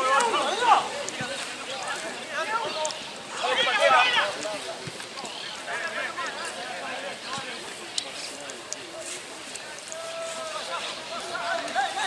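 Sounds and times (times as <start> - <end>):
people shouting: 0.0 - 1.0, 2.4 - 4.4, 9.8 - 12.0.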